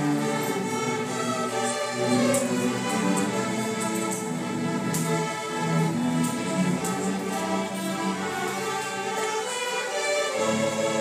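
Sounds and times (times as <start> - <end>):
cellos and double basses: 0.0 - 11.0
violins: 0.0 - 11.0.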